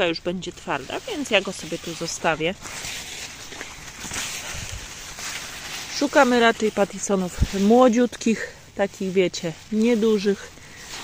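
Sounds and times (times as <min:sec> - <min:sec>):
leaves rustling: 0:00.0 - 0:11.0.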